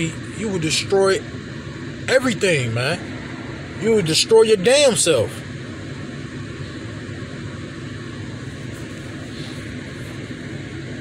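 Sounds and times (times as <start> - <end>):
car cabin hum and hiss: 0.0 - 11.0.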